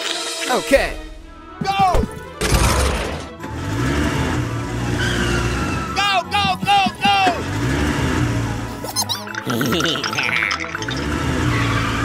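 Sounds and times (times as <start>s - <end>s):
background music: 0.0s - 12.0s
steady rushing vehicle sound: 3.5s - 8.8s.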